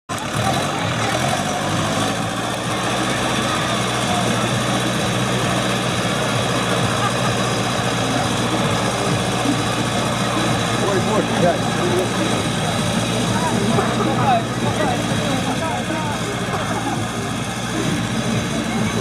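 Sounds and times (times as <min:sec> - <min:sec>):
tractor diesel engine under load: 0:00.0 - 0:19.0.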